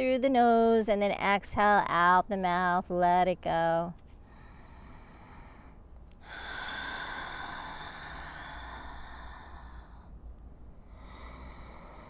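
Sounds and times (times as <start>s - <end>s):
woman breathing: 4.2s - 12.0s.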